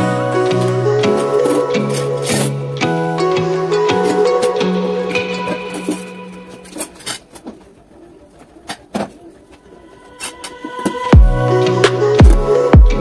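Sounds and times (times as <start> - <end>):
light instrumental music: 0.0 - 7.2, 10.0 - 13.0.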